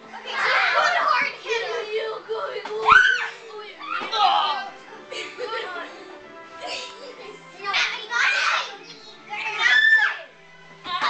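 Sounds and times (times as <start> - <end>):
children shouting and shrieking: 0.0 - 4.8, 7.6 - 11.0
faint background music: 0.0 - 11.0.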